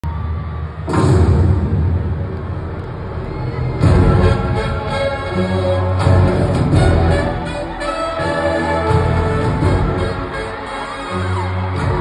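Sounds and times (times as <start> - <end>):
bass-heavy concert music: 0.0 - 12.0
crowd noise: 0.0 - 12.0
sudden loud hit: 0.9 - 2.6.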